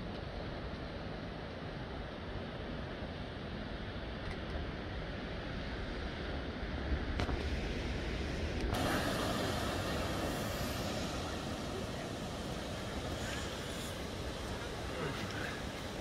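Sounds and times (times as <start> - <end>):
surf breaking over rocks: 8.7 - 16.0
background voices: 8.8 - 16.0.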